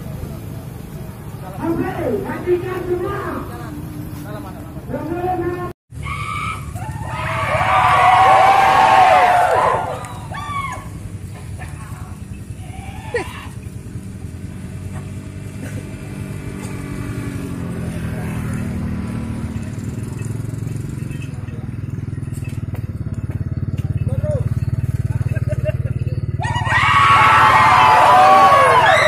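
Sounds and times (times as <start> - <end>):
vehicle engine running: 0.0 - 29.0
men shouting: 6.4 - 11.0, 26.3 - 29.0
marching crowd: 6.6 - 12.3, 26.4 - 29.0.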